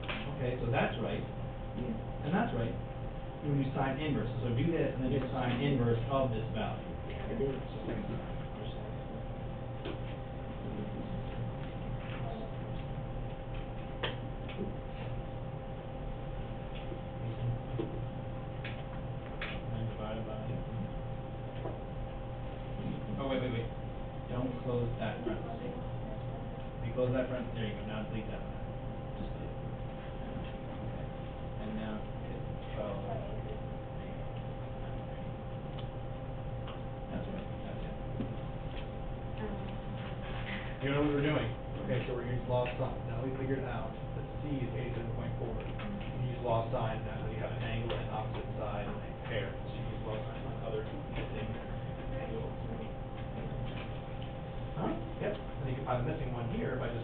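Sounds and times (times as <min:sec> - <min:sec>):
electrical hum: 0:00.0 - 0:57.0.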